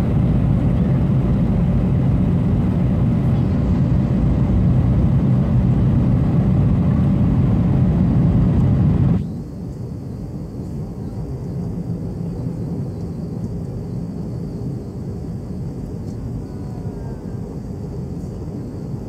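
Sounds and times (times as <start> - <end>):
airliner cabin roar: 0.0 - 19.0.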